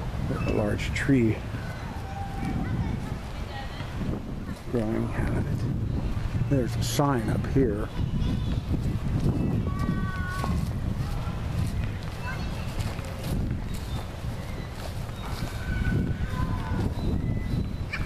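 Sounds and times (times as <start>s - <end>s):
footsteps on grass: 0.0s - 18.0s
wind rumbling on microphone: 0.0s - 18.0s
faint high-pitched calls: 13.9s - 18.0s.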